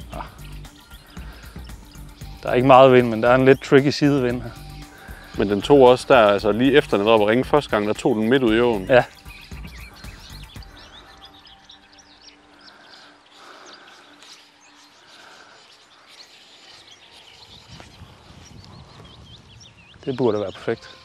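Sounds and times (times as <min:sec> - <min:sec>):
faint background music: 0:00.0 - 0:19.1, 0:19.8 - 0:21.0
small birds chirping: 0:00.0 - 0:21.0.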